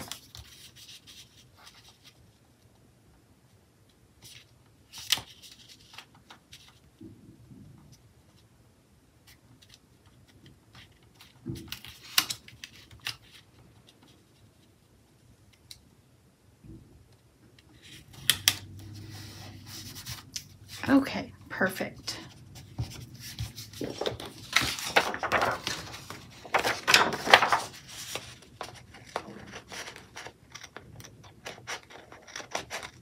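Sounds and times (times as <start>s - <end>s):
paper rustling: 0.0s - 2.2s, 17.8s - 21.0s, 22.1s - 33.0s.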